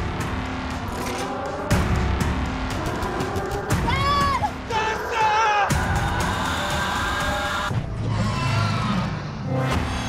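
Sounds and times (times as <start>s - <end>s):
dramatic trailer music: 0.0s - 10.0s
woman screaming: 3.8s - 5.6s.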